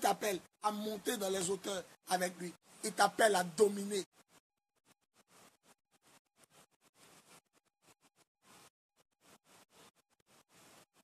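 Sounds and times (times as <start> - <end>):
rubbing on phone microphone: 1.2 - 11.0.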